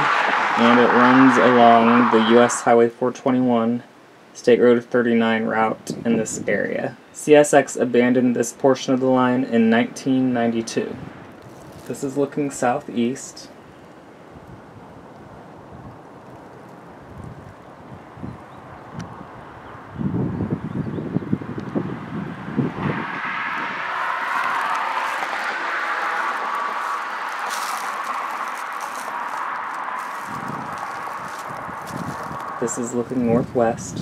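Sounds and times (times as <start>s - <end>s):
steady rushing noise: 0.0s - 2.9s, 21.3s - 34.0s
wind buffeting microphone: 13.5s - 34.0s.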